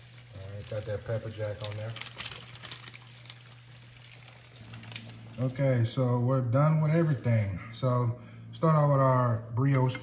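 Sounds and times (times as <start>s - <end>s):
low hum: 4.3s - 10.0s.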